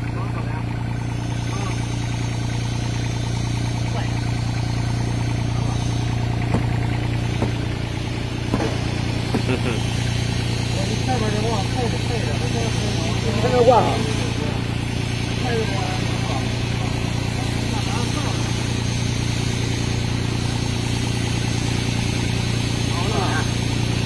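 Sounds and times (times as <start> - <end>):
engine idling: 0.0 - 24.0
sharp metallic knocks: 6.4 - 7.8, 8.4 - 9.5.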